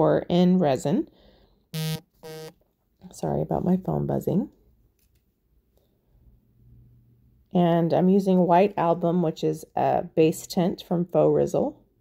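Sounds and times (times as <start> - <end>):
mobile phone vibrating: 1.8 - 2.5.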